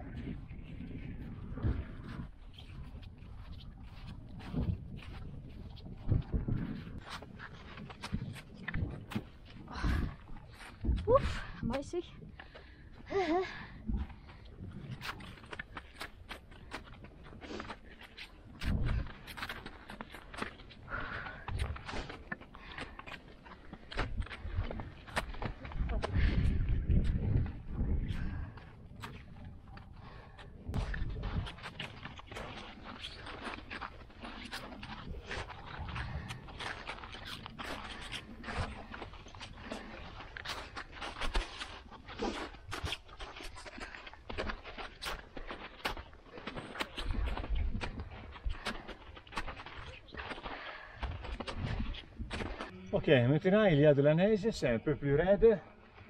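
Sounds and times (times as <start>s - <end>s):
low rumbling on microphone: 24.1s - 33.0s.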